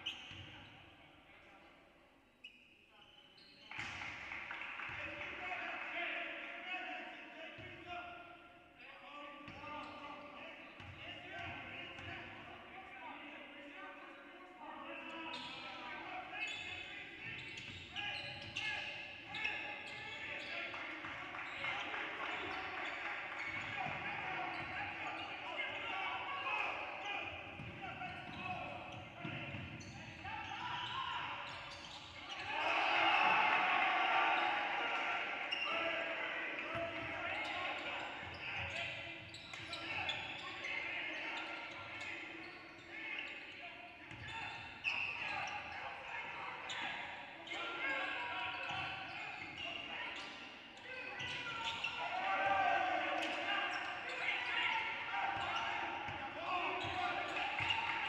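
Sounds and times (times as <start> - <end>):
indistinct calls of people: 32.3 - 36.6.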